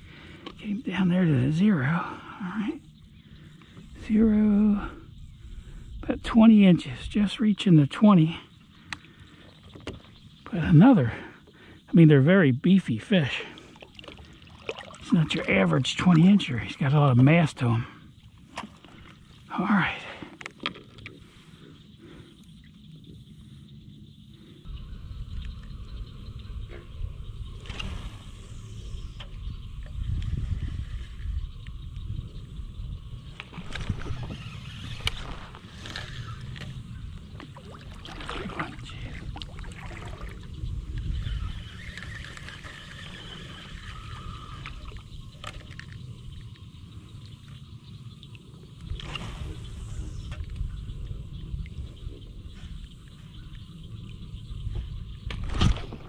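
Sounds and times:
wind rumble on microphone: 22.8s - 56.0s.

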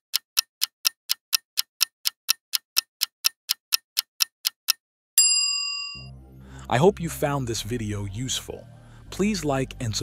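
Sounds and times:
clock ticking: 0.0s - 4.8s.

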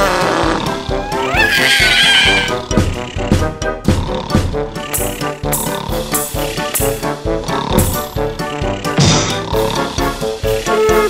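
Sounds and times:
children's song music: 0.2s - 11.0s
cartoon kitten cry: 1.0s - 2.6s, 10.7s - 11.0s.

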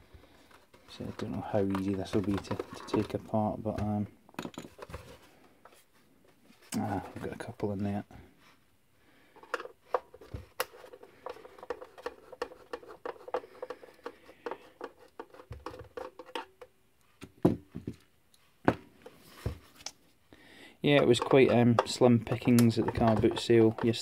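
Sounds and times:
clicks taps and scrapes: 0.2s - 5.8s, 9.4s - 18.4s, 20.9s - 24.0s
screwdriver on plastic case: 21.0s - 24.0s.

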